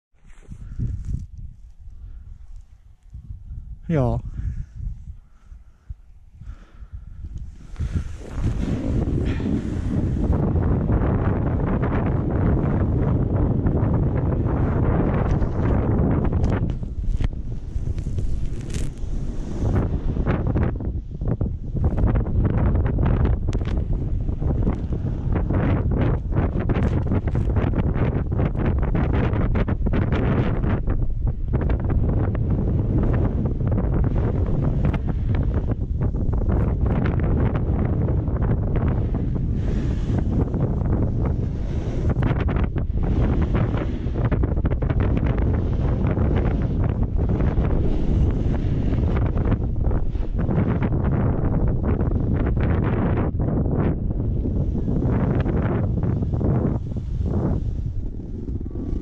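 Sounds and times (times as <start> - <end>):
wind buffeting microphone: 0.1 - 59.0
skis scraping snow: 0.2 - 1.3, 7.5 - 10.4, 14.8 - 20.0, 39.4 - 42.5, 54.9 - 59.0.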